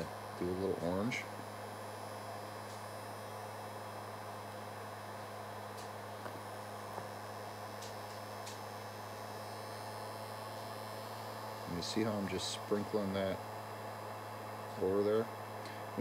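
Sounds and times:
heat gun humming and hissing: 0.0 - 16.0.

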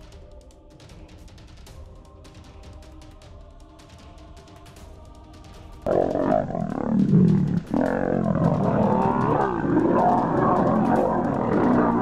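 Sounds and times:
lions growling and snarling: 5.9 - 12.0.

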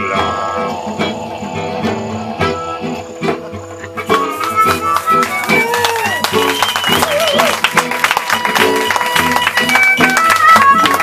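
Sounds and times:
acoustic guitar: 0.0 - 11.0
held melodic notes: 0.0 - 11.0.

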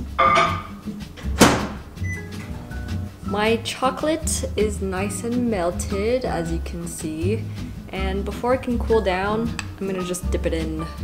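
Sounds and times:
background music: 0.0 - 11.0
microwave door shutting: 1.2 - 2.5.

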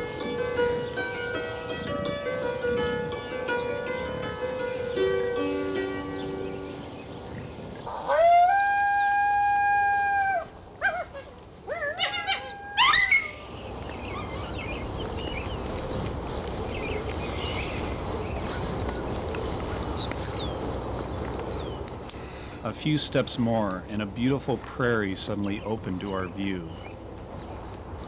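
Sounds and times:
steady outdoor hiss: 0.0 - 28.0
animal calls and squeal: 10.0 - 14.7
faint bird chirps: 13.0 - 15.6.

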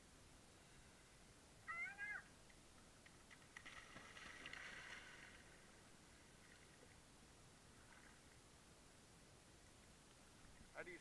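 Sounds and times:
feet splashing in shallow water: 3.3 - 6.8.

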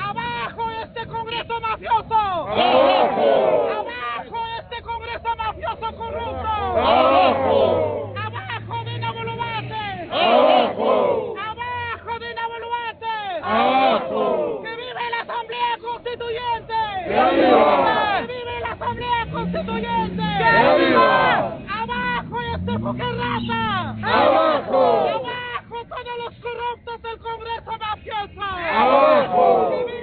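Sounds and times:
crowd shouting a chant: 2.4 - 4.4, 6.0 - 11.6, 13.2 - 15.5, 16.3 - 25.5, 28.6 - 30.0.

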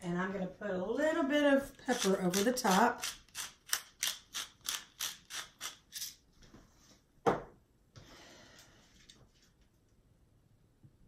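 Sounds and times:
pepper mill grinding: 1.7 - 6.2.

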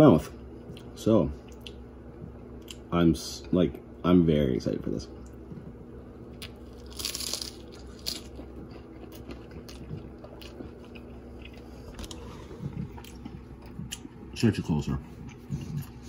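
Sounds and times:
loud crunch of crust: 6.4 - 10.6
quiet chewing: 6.4 - 14.4, 15.0 - 16.0.

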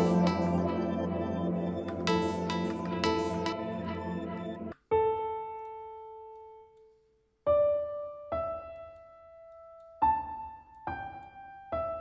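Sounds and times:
piano single notes: 0.0 - 6.7.

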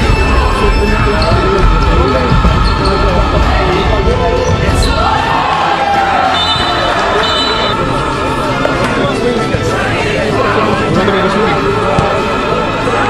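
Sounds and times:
music: 0.0 - 13.0
players' voices: 0.0 - 13.0.

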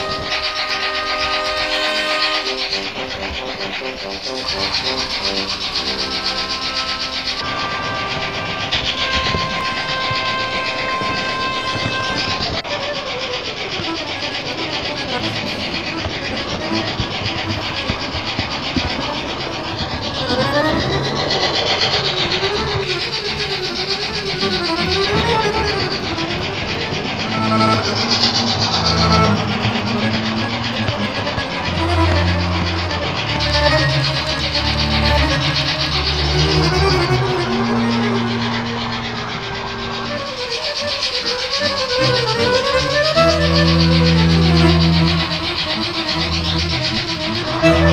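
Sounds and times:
model train wheels rattling: 0.0 - 47.9
rapid regular clicking: 0.0 - 47.9
high rising tone: 11.6 - 47.9.

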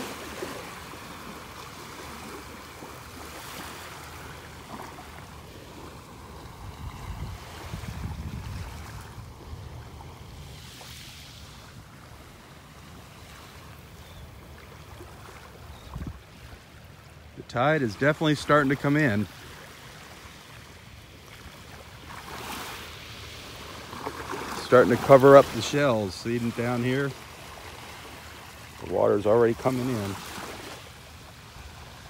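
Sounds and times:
small waves washing onto beach: 0.0 - 32.0.

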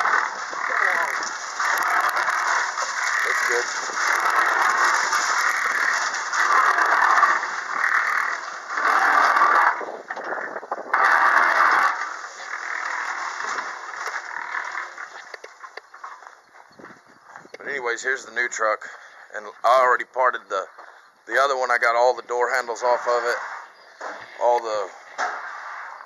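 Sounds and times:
cement mixer churning concrete: 0.0 - 14.2.

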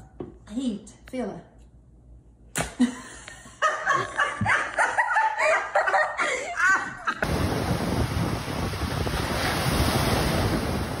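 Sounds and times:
ocean surf breaking: 7.2 - 11.0
wind rumbling on microphone: 7.2 - 11.0.

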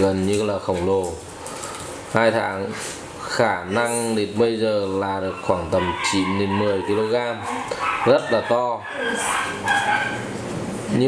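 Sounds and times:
puppy whining: 4.9 - 10.4.

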